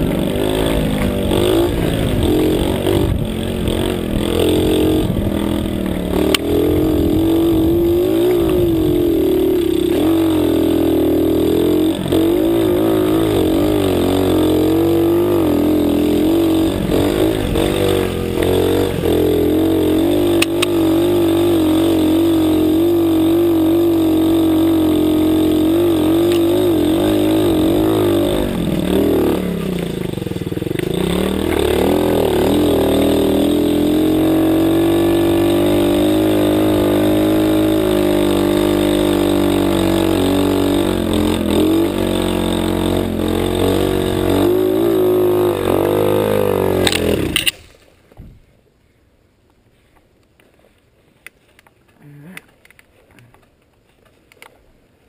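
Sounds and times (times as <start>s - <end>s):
motorbike engine running hard: 0.0s - 47.6s.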